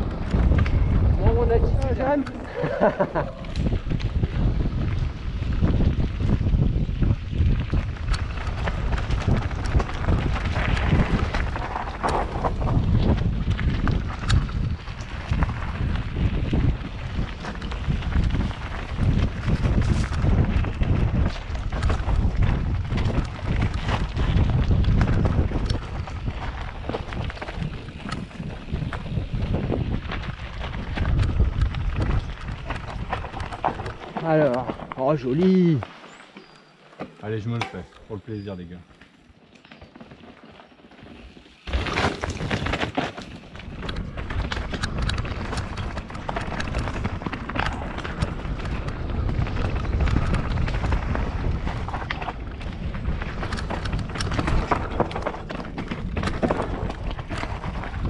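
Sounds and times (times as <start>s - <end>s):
wind buffeting microphone: 0.0s - 35.8s, 41.6s - 58.0s
bike knocks and rattles: 3.6s - 35.2s, 39.7s - 58.0s.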